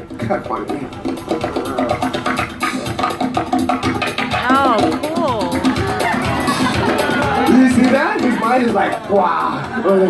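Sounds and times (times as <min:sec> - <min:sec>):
upbeat music with percussive beat: 0:00.0 - 0:10.0
person calling out: 0:04.3 - 0:05.9.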